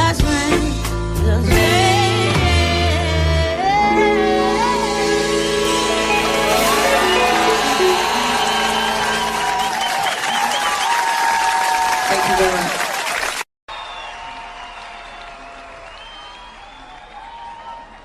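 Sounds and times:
song ending: 1.3s - 10.8s
audience applause and cheering: 5.1s - 18.0s.

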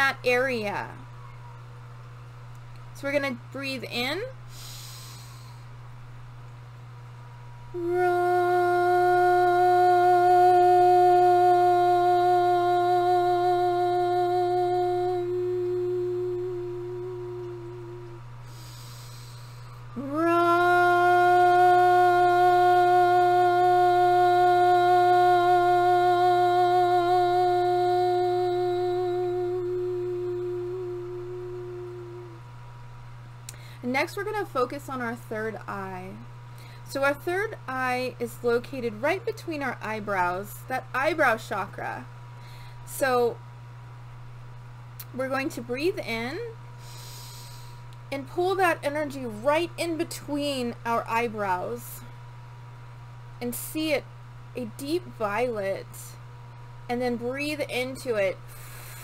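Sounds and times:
woman breathing in: 4.5s - 5.7s, 18.4s - 19.9s, 33.5s - 33.8s, 36.5s - 36.8s, 42.4s - 42.9s, 46.8s - 47.9s
woman toning long notes: 7.7s - 32.5s.

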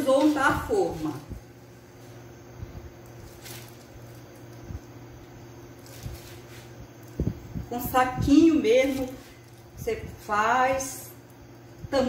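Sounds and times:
plastic bag squishing: 2.9s - 5.0s, 5.7s - 7.2s, 8.7s - 10.3s.

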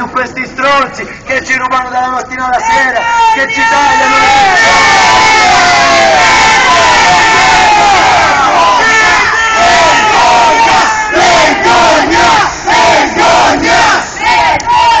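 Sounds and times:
crowd of protesters shouting: 2.6s - 15.0s
crowd rhythmic chant: 4.6s - 15.0s.

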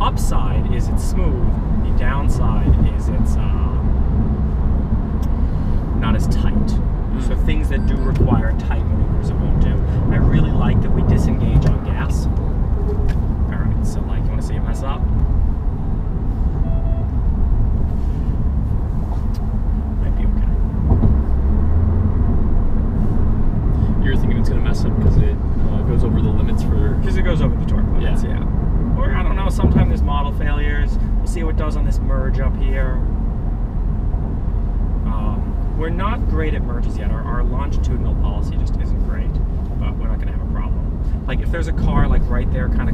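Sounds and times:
road and tyre noise in car cabin: 0.0s - 42.9s.

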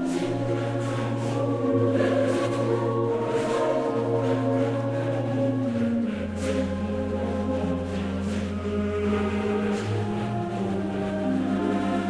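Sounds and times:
choir-like held notes: 0.0s - 12.0s
low sustained note: 0.0s - 12.0s.

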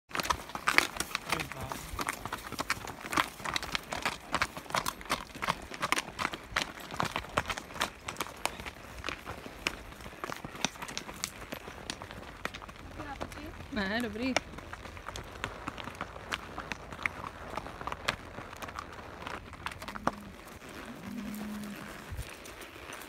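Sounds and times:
hooves clopping on gravel: 0.1s - 23.0s.

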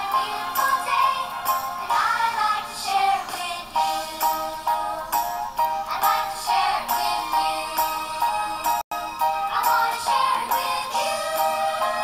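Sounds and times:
children's song vocals: 0.0s - 12.0s.

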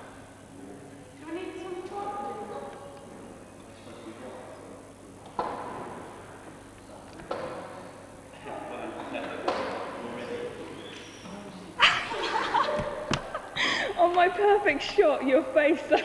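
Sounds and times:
muffled voices in a hall: 0.0s - 16.0s.

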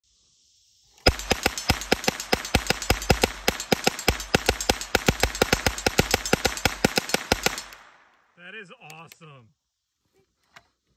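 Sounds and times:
rapid gunfire from crank gun: 1.0s - 7.8s.

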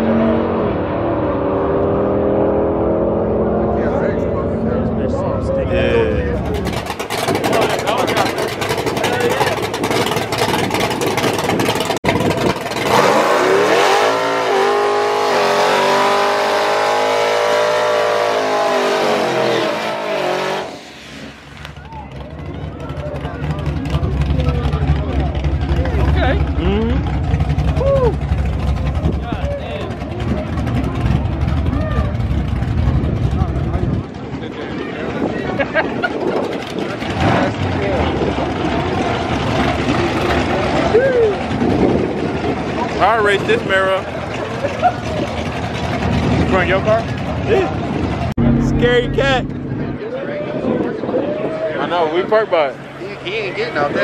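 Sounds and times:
loud low engine rumble: 0.5s - 54.0s
car engine revving high: 12.8s - 21.8s, 48.4s - 50.2s.

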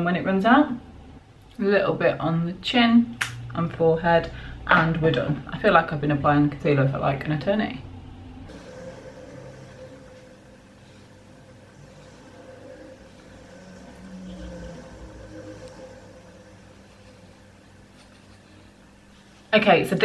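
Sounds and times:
low rumble: 0.0s - 19.1s
faint background hum: 0.0s - 20.0s.

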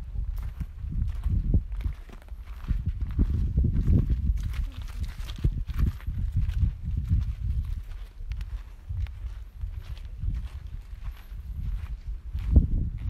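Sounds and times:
footsteps on gravel: 0.0s - 13.0s
wind on microphone: 0.0s - 13.0s.

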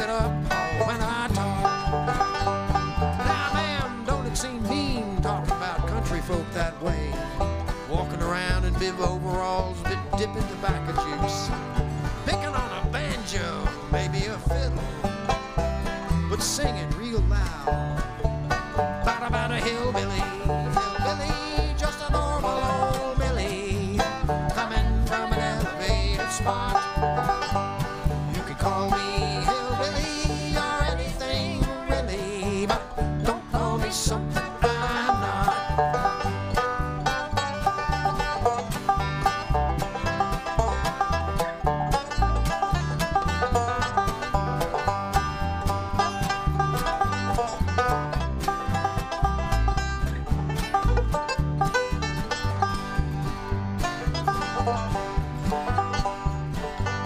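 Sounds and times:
acoustic guitars: 0.0s - 57.0s
banjo: 0.0s - 57.0s
upright bass: 0.0s - 57.0s.

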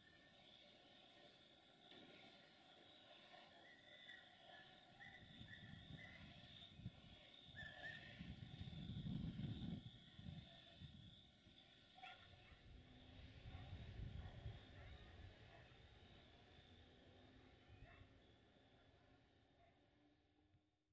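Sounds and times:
small birds chirping: 2.2s - 12.6s.

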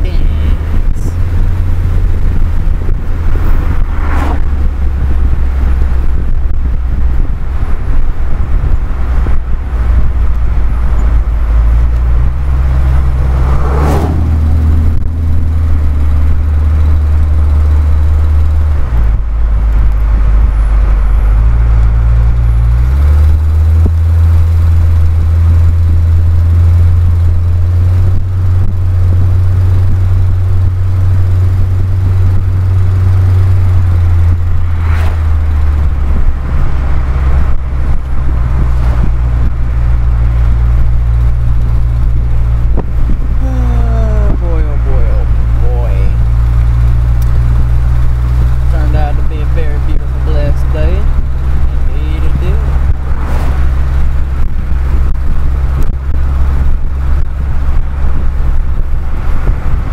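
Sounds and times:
car engine and road noise: 0.0s - 59.9s.

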